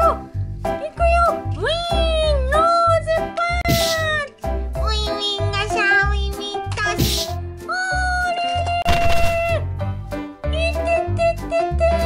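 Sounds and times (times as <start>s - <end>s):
children's music with bass beat: 0.0s - 12.0s.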